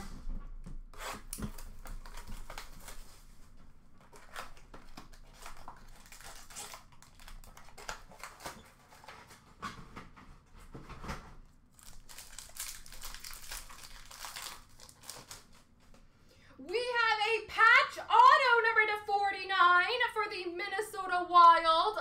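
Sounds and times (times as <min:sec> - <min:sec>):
plastic wrapping tearing and crinkling: 0:01.0 - 0:09.7, 0:11.7 - 0:15.8.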